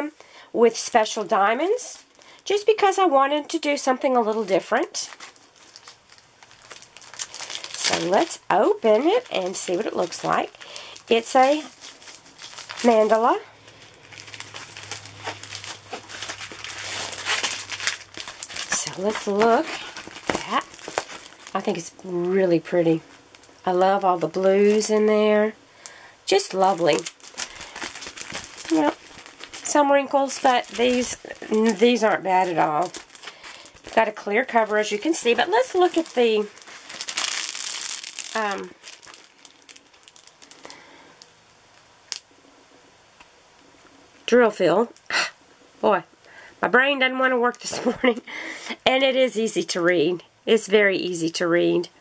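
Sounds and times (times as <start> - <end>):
plastic crinkling: 3.6 - 42.2.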